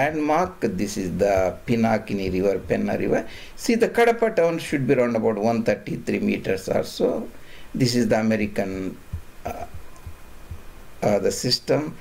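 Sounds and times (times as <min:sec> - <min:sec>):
faint low thumps: 0:00.4 - 0:03.3, 0:08.1 - 0:11.2
man saying uh: 0:00.4 - 0:03.3, 0:07.2 - 0:09.8.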